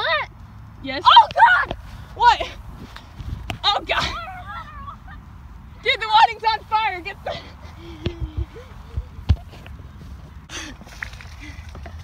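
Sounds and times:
wind rumbling on microphone: 1.8 - 5.0, 7.6 - 12.0
microphone handling thumps: 8.0 - 9.8.

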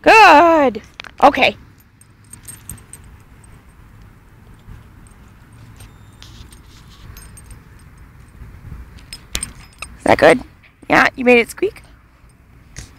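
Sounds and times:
faint metallic clicks and jingles: 0.8 - 10.8, 11.7 - 12.9
wind rumbling on microphone: 2.5 - 10.6.

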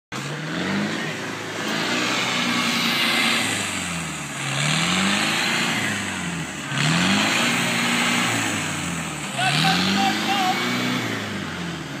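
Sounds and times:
engine revving: 0.1 - 12.0
person shouting: 9.3 - 10.6.

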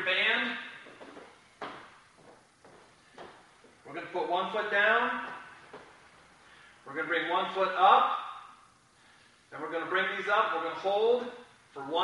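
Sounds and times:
man speaking: 0.0 - 0.8, 3.8 - 5.4, 9.5 - 12.0.

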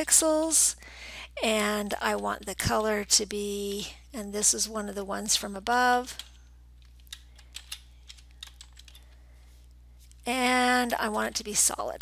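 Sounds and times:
faint keyboard keystrokes: 6.2 - 9.2.

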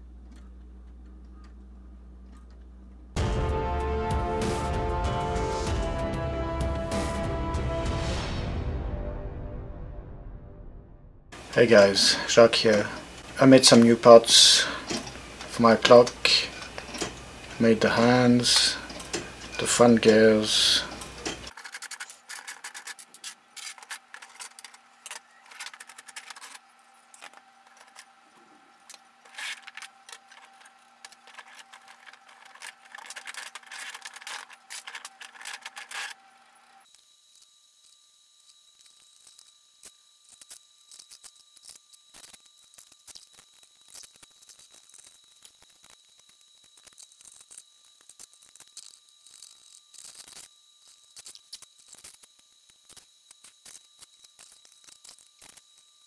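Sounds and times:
small plastic parts clicking: 28.9 - 36.2.

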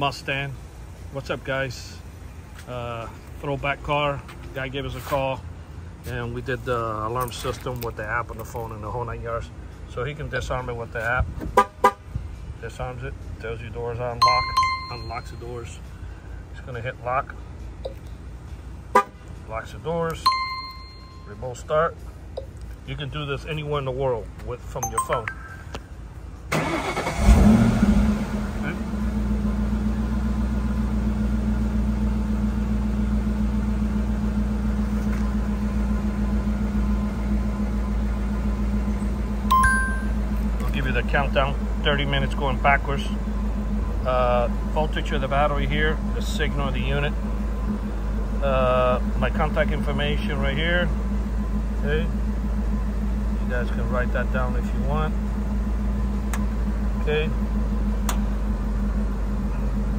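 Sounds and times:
car engine starting and idling: 0.0 - 59.9
electronic two-tone beep: 24.8 - 25.7, 39.5 - 40.2.

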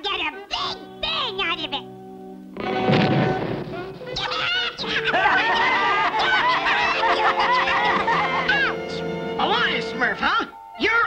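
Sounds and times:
background music: 0.0 - 11.0
cartoon explosion bang: 2.6 - 4.2
cartoon voices laughing: 4.3 - 8.9.

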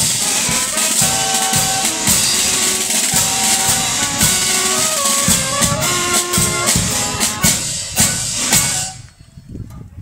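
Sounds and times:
drum and cymbal strokes: 0.0 - 9.1
marching band playing: 0.0 - 9.1
crowd voices: 0.0 - 9.2.

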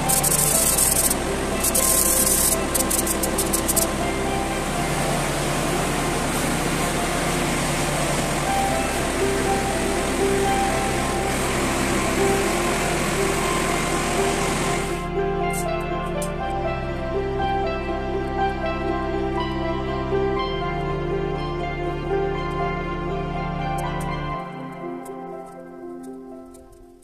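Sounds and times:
aerosol spray can hissing: 0.0 - 4.0
background music with bass notes: 0.0 - 27.0.

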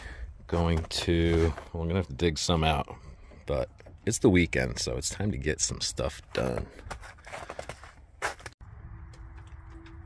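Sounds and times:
light scrapes and crunches: 0.4 - 2.1, 6.3 - 8.6.

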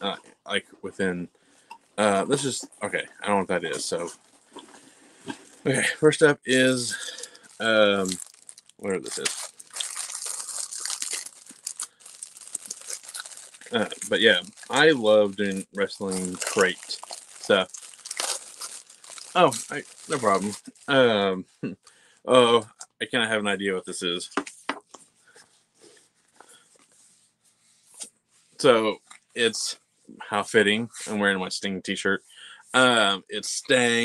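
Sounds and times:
plastic wrapping rustling: 3.8 - 5.7, 6.5 - 21.1
plastic bag crinkling: 6.5 - 21.0.

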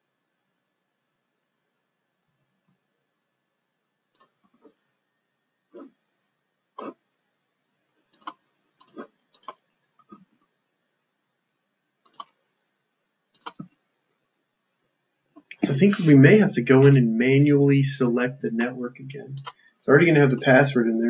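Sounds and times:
computer mouse buttons clicking: 4.2 - 4.4, 8.1 - 9.6, 12.0 - 12.4, 13.3 - 13.8, 19.4 - 19.6.

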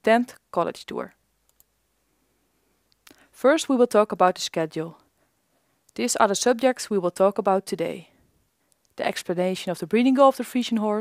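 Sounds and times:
computer mouse clicks: 1.4 - 1.7.

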